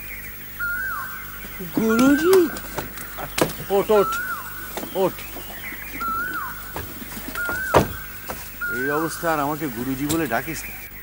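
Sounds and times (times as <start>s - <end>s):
bird whistled call: 0.0s - 11.0s.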